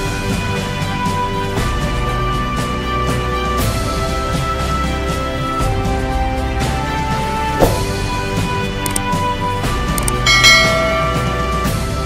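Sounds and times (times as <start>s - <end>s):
background music: 0.0s - 12.0s
notification bell chime: 10.3s - 11.7s.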